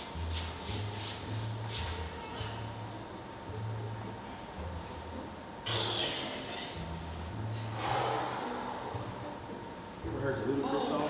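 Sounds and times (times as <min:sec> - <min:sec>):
woman breathing forcefully: 0:07.4 - 0:09.6.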